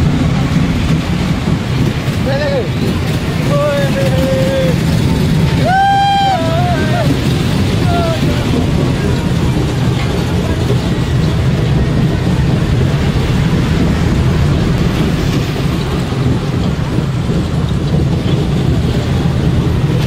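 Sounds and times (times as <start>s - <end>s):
fairground ride rumble: 0.0s - 20.0s
wind buffeting microphone: 0.0s - 20.0s.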